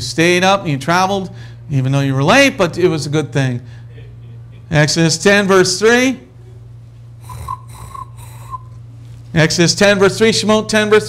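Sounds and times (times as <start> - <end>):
low electrical hum: 0.0 - 11.0
man breathing through nose: 7.2 - 8.8.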